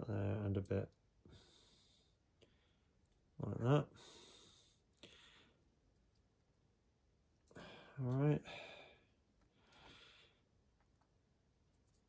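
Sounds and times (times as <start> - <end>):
faint breaths: 1.2 - 3.1, 3.9 - 5.8, 7.5 - 10.6.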